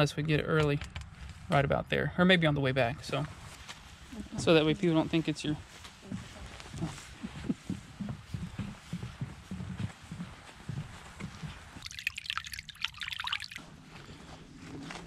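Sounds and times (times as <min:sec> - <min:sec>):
footsteps on wooden planks: 0:05.6 - 0:11.8.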